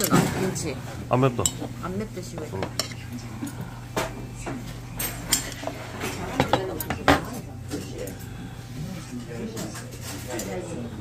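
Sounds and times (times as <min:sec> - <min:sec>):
chopsticks clinking on steel bowls: 0:01.4 - 0:01.7, 0:02.4 - 0:08.2.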